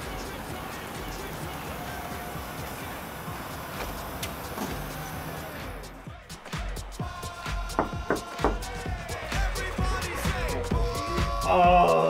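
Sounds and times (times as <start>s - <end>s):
car pulling up: 0.0s - 6.1s.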